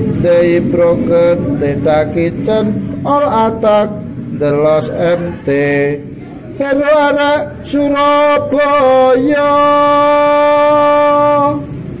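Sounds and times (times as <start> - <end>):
man singing long note: 6.6 - 11.8.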